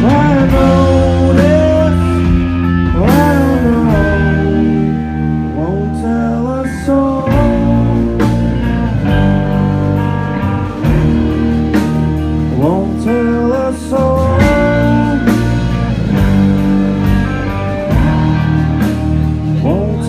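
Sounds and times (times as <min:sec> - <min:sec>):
person singing: 0:00.0 - 0:08.8, 0:12.5 - 0:15.9, 0:19.3 - 0:20.0
bass guitar: 0:00.0 - 0:20.0
electric guitar: 0:00.0 - 0:20.0.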